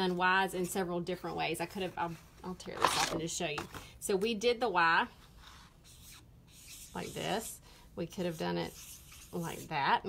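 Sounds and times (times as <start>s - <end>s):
brush pen rubbing on paper: 5.4s - 7.6s, 8.2s - 9.8s.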